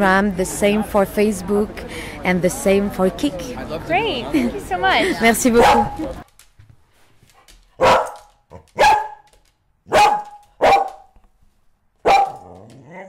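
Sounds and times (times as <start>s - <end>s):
dog barking: 5.6s - 6.1s, 7.8s - 9.3s, 9.9s - 11.1s, 12.0s - 13.0s.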